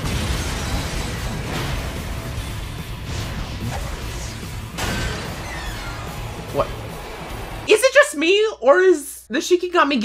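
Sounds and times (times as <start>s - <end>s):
impacts and whooshes: 0.0s - 7.8s
battle soundtrack music: 0.0s - 8.3s.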